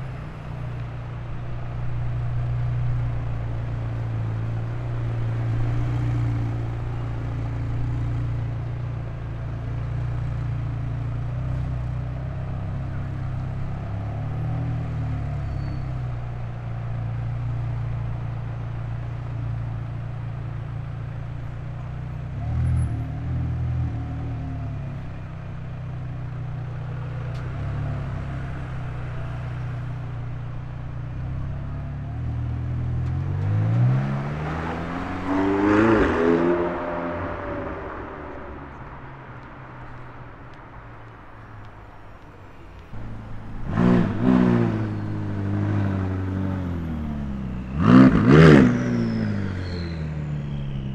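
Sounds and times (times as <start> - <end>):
car engine at low revs: 0.0 - 50.9.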